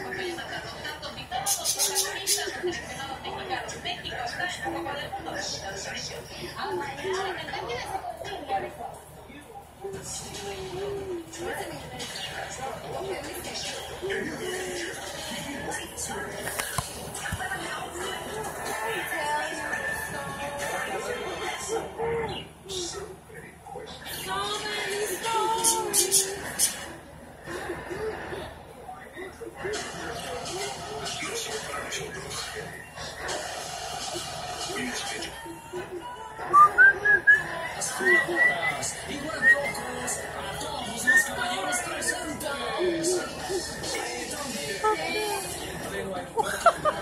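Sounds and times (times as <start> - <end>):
television music: 0.0 - 47.0
television speech: 0.0 - 47.0.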